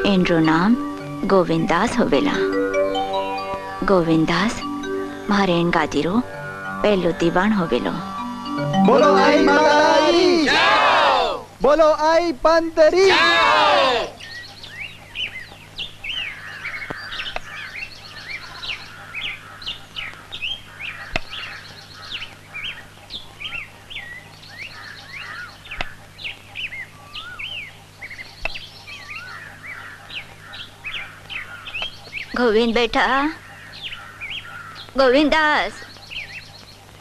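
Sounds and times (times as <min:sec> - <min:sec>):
small birds chirping: 0:00.0 - 0:11.2, 0:13.2 - 0:37.0
steady low hum: 0:00.0 - 0:37.0.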